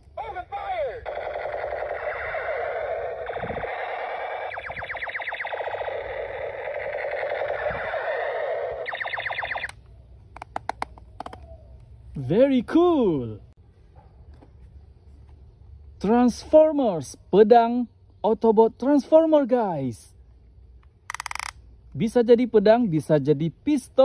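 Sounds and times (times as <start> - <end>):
toy gun electronic machine-gun rattle: 1.0 - 9.8, 21.1 - 21.6
sharp clicks: 8.8 - 11.4, 20.8 - 21.6.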